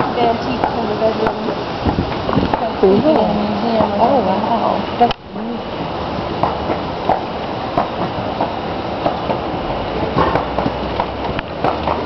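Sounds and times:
horse hooves knocking: 0:05.8 - 0:12.0.

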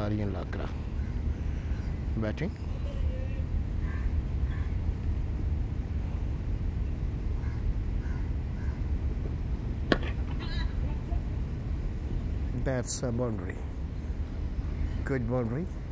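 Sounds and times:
cricket bat striking ball: 0:09.9 - 0:10.4.

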